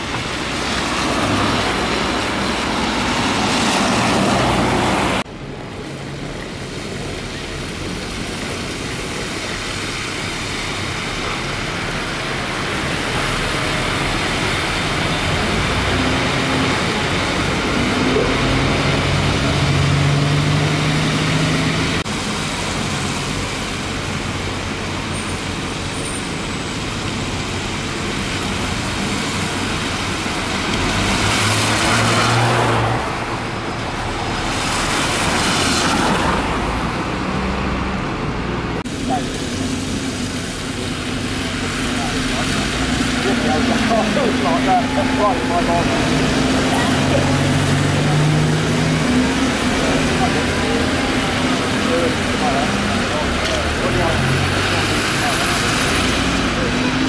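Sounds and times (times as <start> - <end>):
bus engines running: 0.0 - 57.0
tyres hissing on wet road: 0.0 - 57.0.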